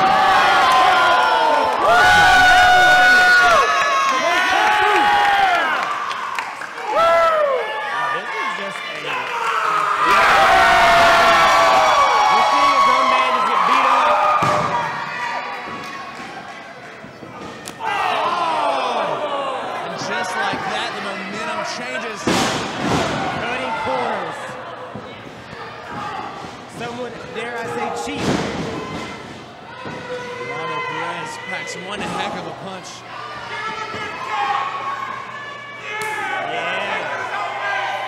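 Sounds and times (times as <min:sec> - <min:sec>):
crowd shouting and yelling: 0:00.0 - 0:38.0.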